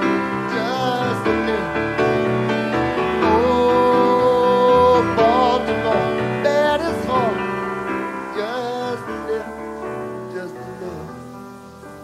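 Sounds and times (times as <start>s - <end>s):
piano playing: 0.0s - 12.0s.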